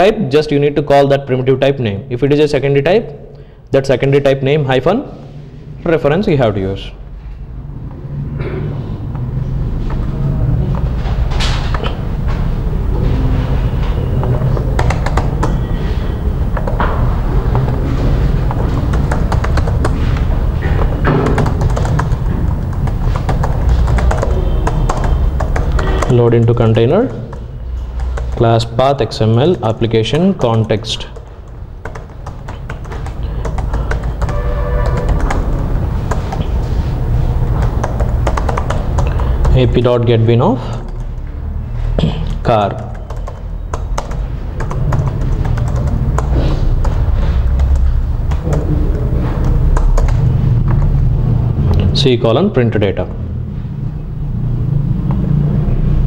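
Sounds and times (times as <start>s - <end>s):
steady low hum: 2.0s - 56.0s
computer keyboard typing: 13.9s - 28.8s, 29.4s - 39.8s, 40.6s - 41.3s, 42.7s - 51.0s.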